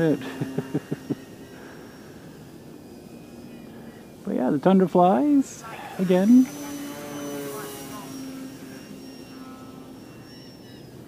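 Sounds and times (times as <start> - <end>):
model plane motor whining: 0.0 - 11.0.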